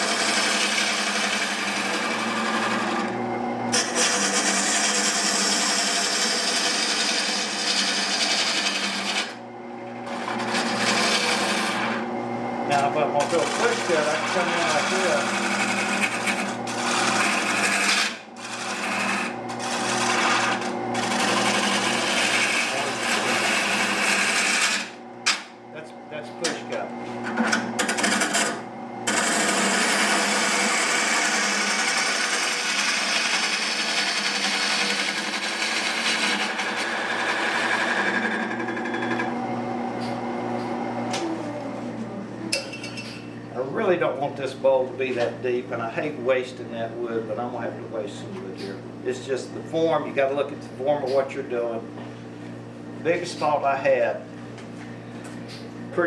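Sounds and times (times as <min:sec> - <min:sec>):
lathe humming: 0:00.0 - 0:56.0.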